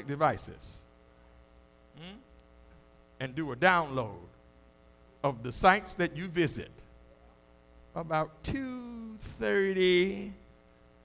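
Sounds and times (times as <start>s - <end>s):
electrical mains hum: 0.0s - 11.0s
man saying hmm: 2.0s - 2.3s.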